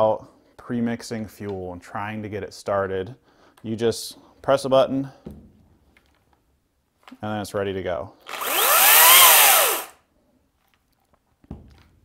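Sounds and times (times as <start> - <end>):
chainsaw motor whining: 8.3 - 10.0.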